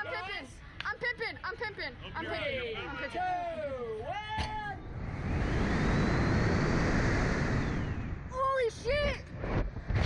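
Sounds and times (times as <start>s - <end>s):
wind buffeting microphone: 4.8s - 10.0s.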